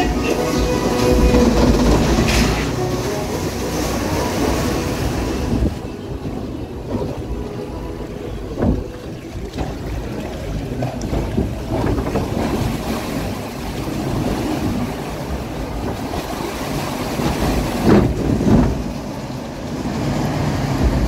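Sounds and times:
water rushing and splashing: 0.0 - 21.0.

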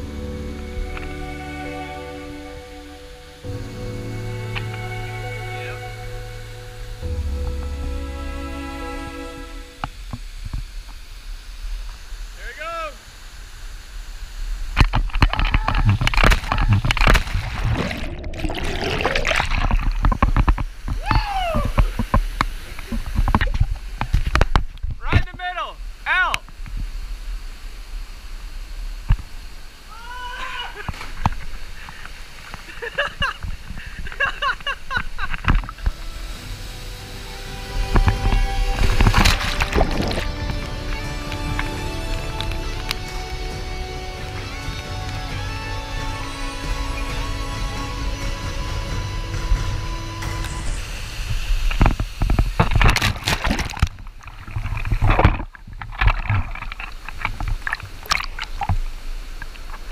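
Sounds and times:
water rushing and splashing: 13.0 - 25.0, 25.8 - 47.4, 48.1 - 59.9
people whooping and yelling: 21.0 - 21.8, 29.9 - 30.9.

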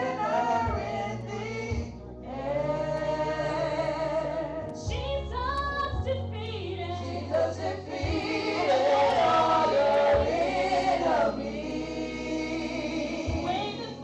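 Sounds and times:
low bass accompaniment: 0.0 - 14.0
women singing gospel: 0.0 - 14.0.

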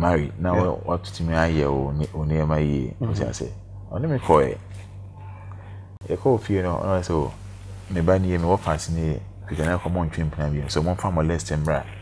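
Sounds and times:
man talking: 0.0 - 4.6, 6.0 - 12.0
low hum: 0.0 - 12.0.

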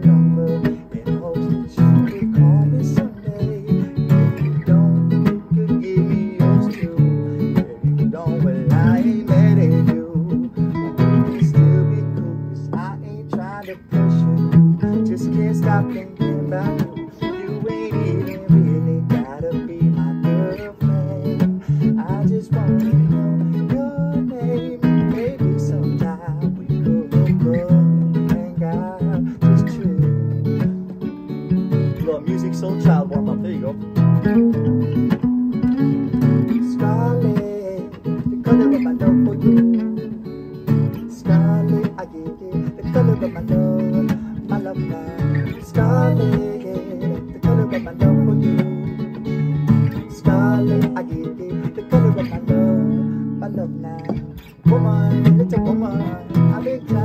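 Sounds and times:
two acoustic guitars playing: 0.0 - 57.0.

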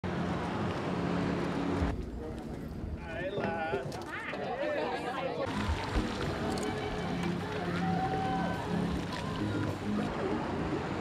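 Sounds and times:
people chattering: 2.1 - 11.0.

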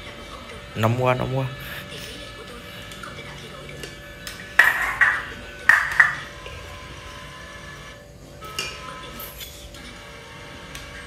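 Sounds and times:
utensils clinking porcelain bowl: 4.3 - 6.3.

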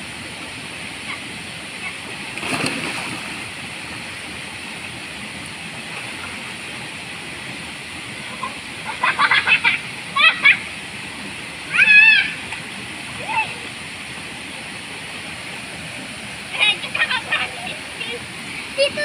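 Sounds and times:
waterfall and stream rushing: 0.0 - 19.0
water splash: 2.2 - 3.5.

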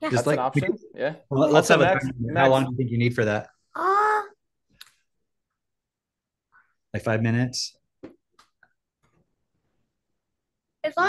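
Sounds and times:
man saying uh: 0.1 - 3.4.

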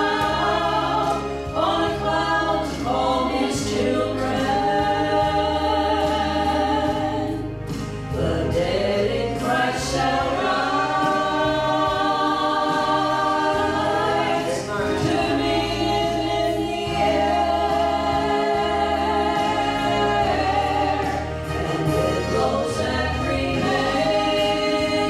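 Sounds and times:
women singing gospel in harmony: 0.0 - 25.0.

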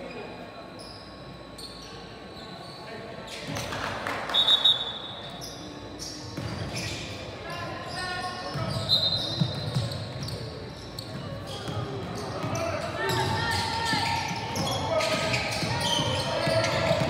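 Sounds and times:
basketball bouncing on wooden court: 9.4 - 17.0.

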